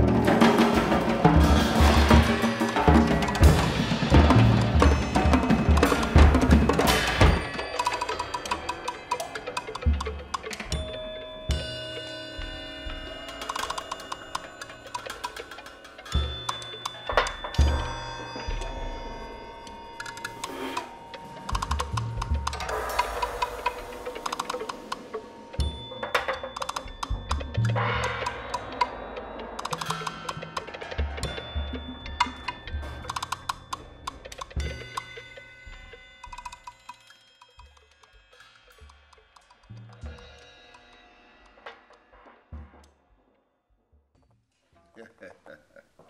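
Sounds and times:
ringing small cymbals: 0.0s - 42.6s.

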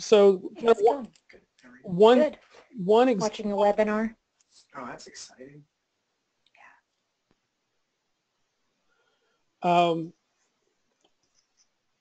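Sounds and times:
faint voice murmur: 4.7s - 5.6s.

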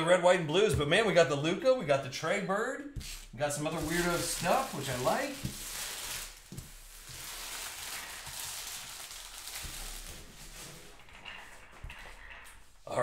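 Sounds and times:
rustling card wrappers: 3.0s - 12.8s.

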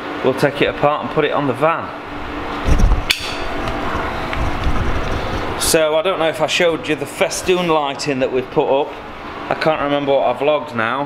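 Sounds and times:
steady low hum: 0.0s - 11.0s
camera handling rumble: 2.5s - 5.6s
sharp knock: 3.0s - 3.6s.

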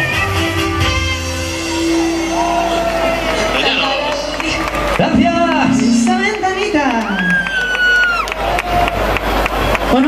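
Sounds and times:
crowd cheering and clapping: 0.0s - 10.0s.

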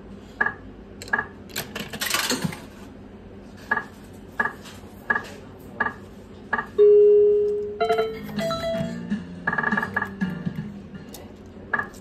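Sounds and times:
slot machine winning jingle: 6.8s - 10.0s
slot machine beep: 6.8s - 10.3s.

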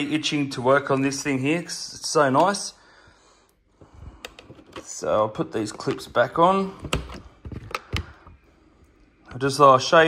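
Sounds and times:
plastic body shell handled: 4.3s - 8.2s.

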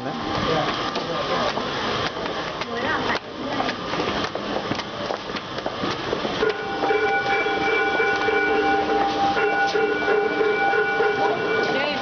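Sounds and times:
temple bell ringing: 6.4s - 12.0s.

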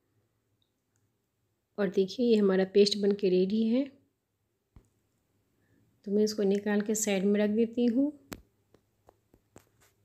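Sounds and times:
woman speaking: 1.8s - 4.0s, 6.1s - 8.3s.

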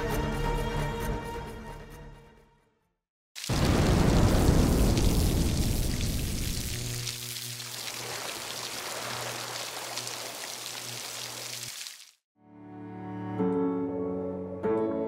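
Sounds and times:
crackling static burst: 3.4s - 12.0s.

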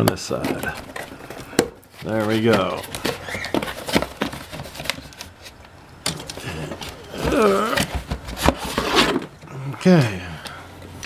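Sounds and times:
cardboard box being handled: 0.3s - 5.3s.

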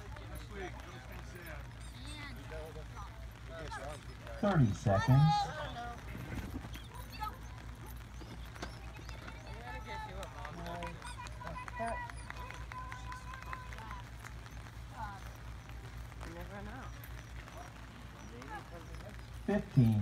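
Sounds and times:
faint outdoor hum: 0.0s - 20.0s.

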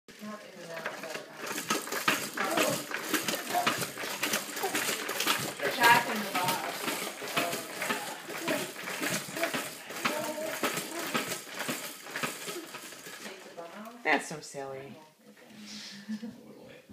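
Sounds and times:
plastic baby jumper rattling: 0.1s - 14.0s.

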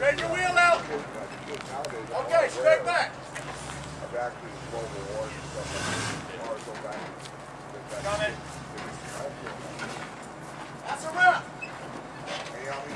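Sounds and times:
truck engine idling: 0.0s - 12.9s.

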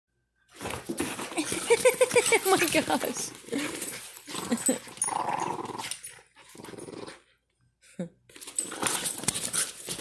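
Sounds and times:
dogs play-growling: 0.6s - 7.4s, 8.4s - 10.0s.

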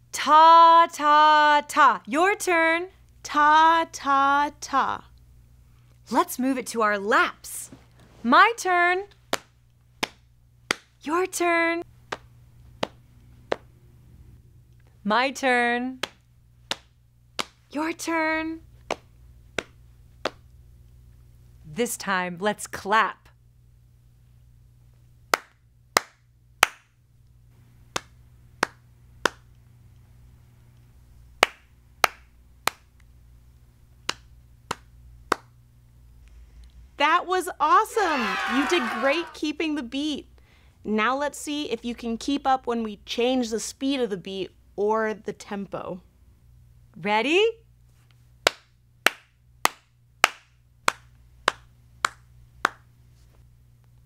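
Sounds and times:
hand claps: 9.3s - 10.9s, 12.1s - 13.7s, 16.0s - 17.6s, 18.9s - 20.4s, 25.3s - 26.9s, 27.9s - 29.5s, 31.4s - 32.9s, 34.0s - 35.6s, 38.1s - 39.3s, 48.4s - 52.9s.

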